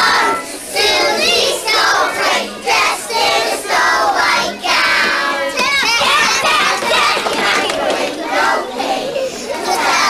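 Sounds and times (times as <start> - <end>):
children singing in unison: 0.0 - 10.0.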